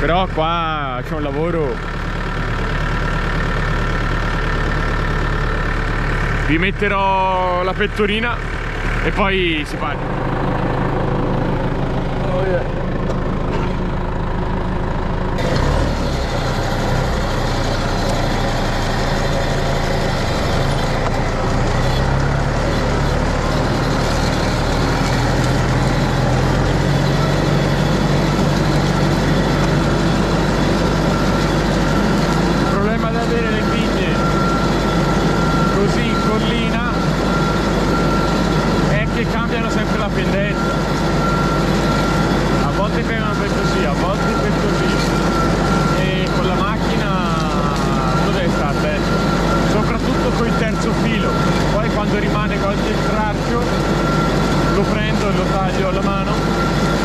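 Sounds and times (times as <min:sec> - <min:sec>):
steady high whine: 0:00.0 - 0:57.0
tractor diesel engine running: 0:00.0 - 0:57.0.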